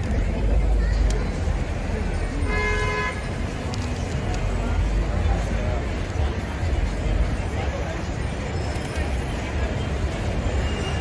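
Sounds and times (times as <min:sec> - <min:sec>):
low rumble of street traffic: 0:00.0 - 0:11.0.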